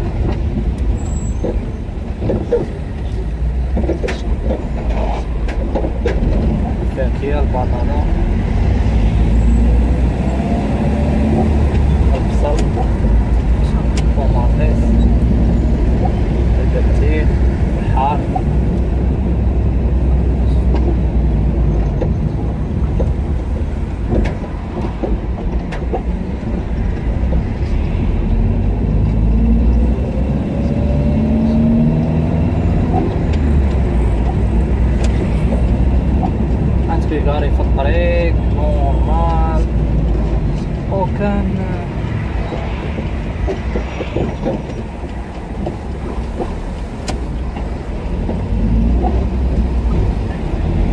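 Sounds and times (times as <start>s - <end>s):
car engine and road rumble: 0.0s - 50.9s.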